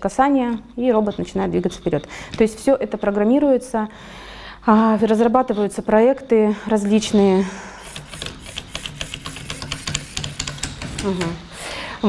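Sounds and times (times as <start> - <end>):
rapid clicking: 7.8 - 11.3.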